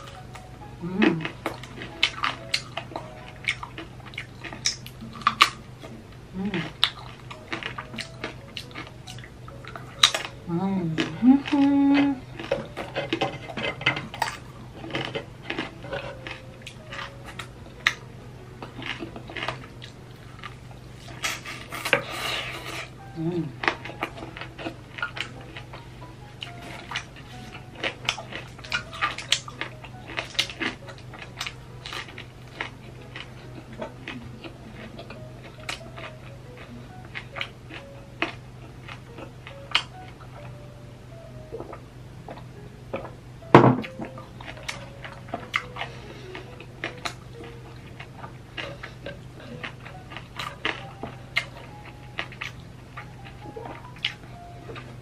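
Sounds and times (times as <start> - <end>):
crunching and chewing: 0.0 - 40.7, 41.4 - 43.2, 43.8 - 55.0
faint cheerful background music: 0.0 - 55.0.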